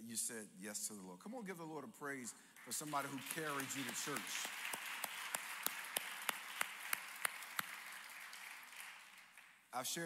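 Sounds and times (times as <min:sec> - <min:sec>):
one person clapping steadily: 0:02.6 - 0:09.6
congregation applauding: 0:02.6 - 0:10.0.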